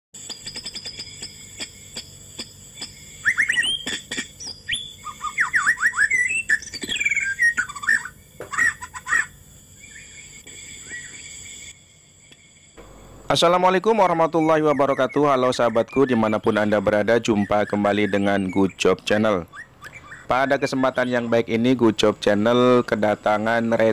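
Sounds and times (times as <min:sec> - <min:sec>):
birds chirping: 0:00.2 - 0:11.7, 0:12.4 - 0:23.9
faint steady high tones: 0:09.2 - 0:23.9.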